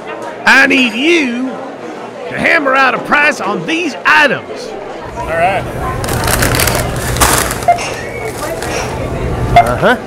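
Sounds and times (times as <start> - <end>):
plastic bag crinkling: 5.9 - 9.0.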